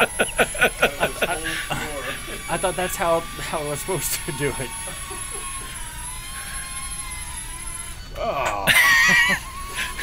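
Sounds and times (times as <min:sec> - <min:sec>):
drone propellers whining: 0:00.0 - 0:10.0.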